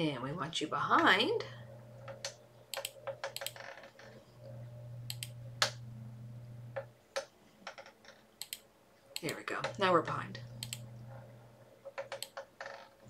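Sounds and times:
low steady hum: 0:00.0 - 0:07.6, 0:08.3 - 0:12.4
mouse and keyboard clicks: 0:08.4 - 0:08.6, 0:12.0 - 0:12.4.

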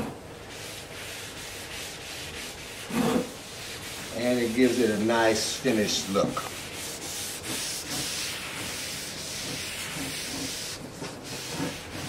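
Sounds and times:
cloth rubbing wood: 0:00.0 - 0:12.0.

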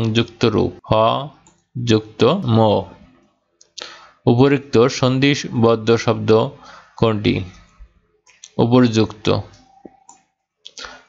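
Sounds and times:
man speaking: 0:00.0 - 0:03.2, 0:03.8 - 0:07.7, 0:08.4 - 0:09.7
computer mouse click: 0:01.4 - 0:01.7.

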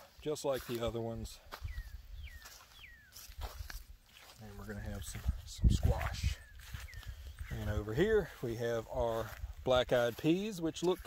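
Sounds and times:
crunching footsteps: 0:00.0 - 0:11.0
bird whistling call: 0:01.6 - 0:03.2.

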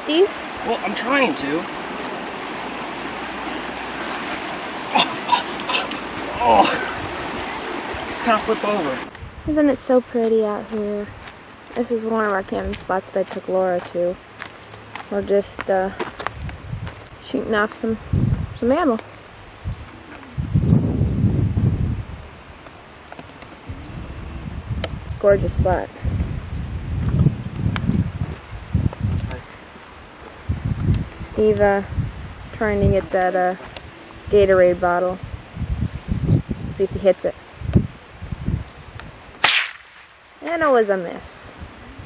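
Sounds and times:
wind buffeting microphone: 0:00.0 - 0:39.8, 0:40.5 - 0:42.0
gunshot with echo: 0:39.4 - 0:40.1.

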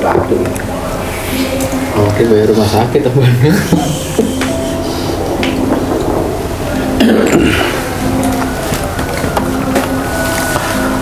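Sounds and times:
music of held notes: 0:00.0 - 0:11.0
steady rushing noise: 0:00.0 - 0:11.0.

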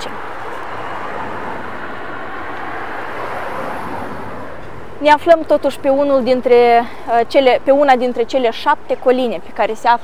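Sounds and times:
cars passing on road: 0:00.0 - 0:10.0.

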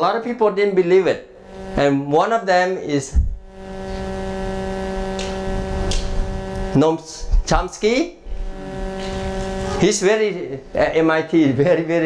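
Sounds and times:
steady electrical hum: 0:00.0 - 0:12.0
short low thump: 0:03.2 - 0:03.4.

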